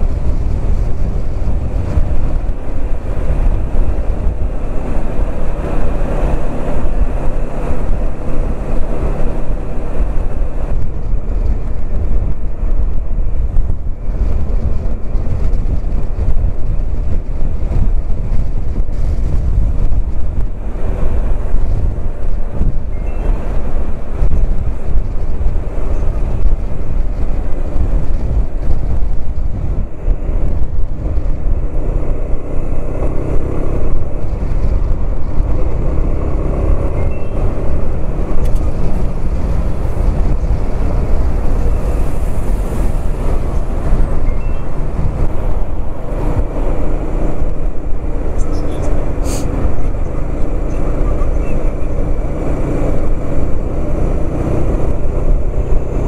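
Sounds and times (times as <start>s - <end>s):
motorcycle engine: 0.0s - 56.0s
wind on microphone: 0.0s - 56.0s.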